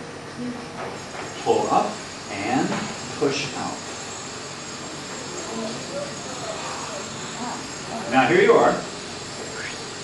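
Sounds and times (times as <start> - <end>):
steady hiss: 1.0 - 10.0.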